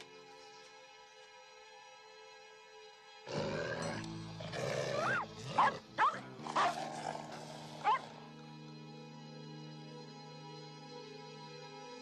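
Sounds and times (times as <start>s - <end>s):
background music: 0.0s - 12.0s
dog growling: 4.5s - 8.1s.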